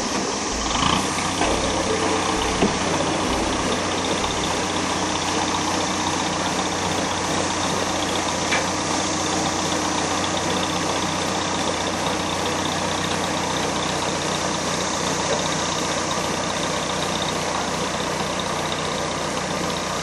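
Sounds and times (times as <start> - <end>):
cicadas droning: 0.0 - 17.5
ferry engine running: 0.0 - 20.0.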